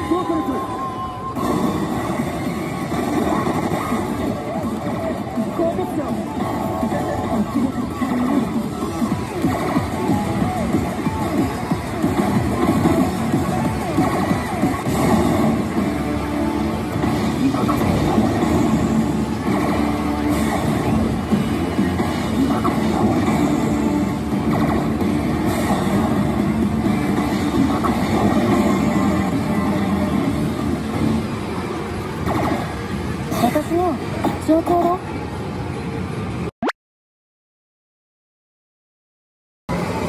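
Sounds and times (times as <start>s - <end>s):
gaming hall din: 0.0s - 36.5s
slot machine music and effects: 1.3s - 34.2s.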